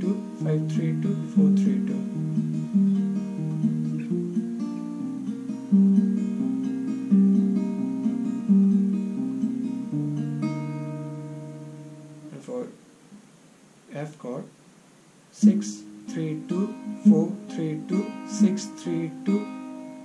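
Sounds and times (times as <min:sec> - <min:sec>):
fingerpicked acoustic guitar: 0:00.0 - 0:13.3, 0:15.3 - 0:20.0.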